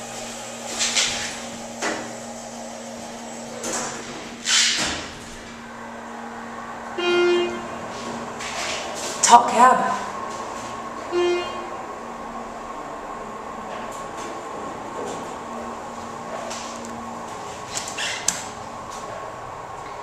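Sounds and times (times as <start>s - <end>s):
elevator pump hum: 0.0s - 20.0s.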